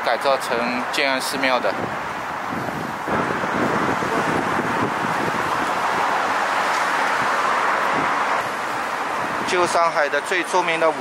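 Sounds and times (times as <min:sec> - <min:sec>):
city street traffic: 0:00.0 - 0:11.0
wind on microphone: 0:01.6 - 0:09.8.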